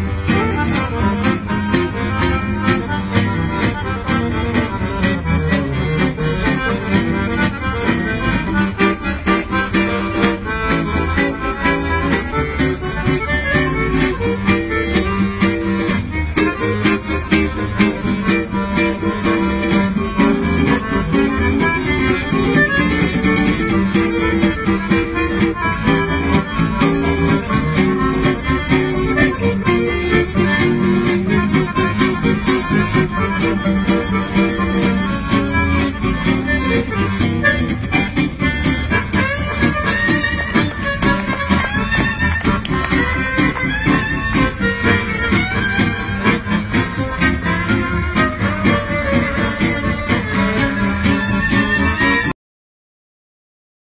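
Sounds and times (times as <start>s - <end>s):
guitar strumming: 0.0s - 52.3s
violin: 0.0s - 52.3s
accordion: 0.0s - 52.4s.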